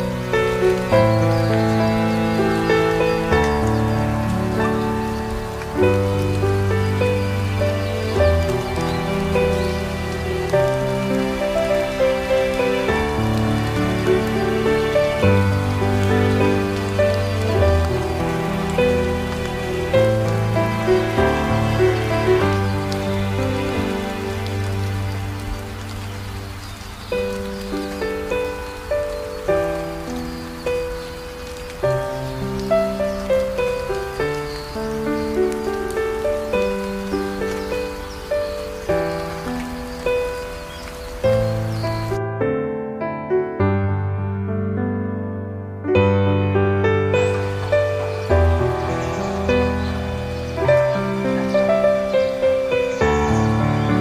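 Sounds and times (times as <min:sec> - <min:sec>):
falling rain hiss: 0:00.0 - 0:44.2, 0:45.7 - 0:54.0
slow soft instrumental music: 0:00.0 - 0:54.0.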